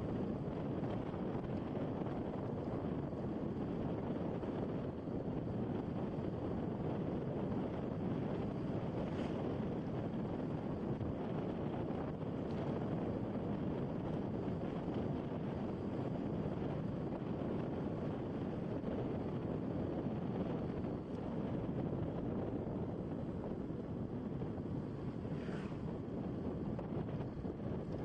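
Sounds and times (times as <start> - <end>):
wind buffeting microphone: 0.0 - 28.0
scooter engine and road noise: 22.9 - 28.0.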